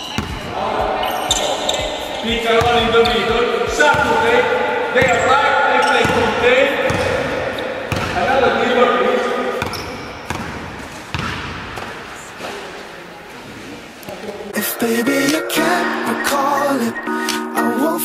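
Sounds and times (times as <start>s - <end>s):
basketball bouncing on hardwood: 6.9s - 8.3s, 9.6s - 11.9s.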